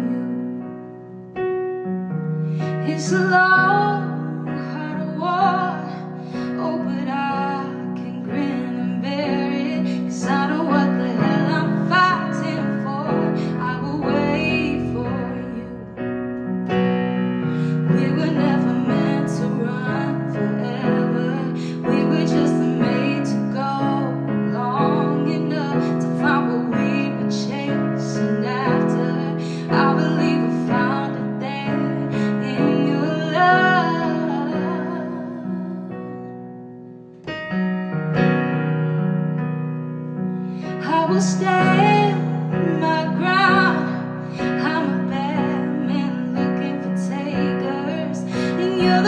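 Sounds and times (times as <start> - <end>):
woman singing: 0.0 - 0.9, 2.6 - 16.8, 17.4 - 36.4, 40.6 - 49.0
keyboard piano chords: 0.0 - 49.0.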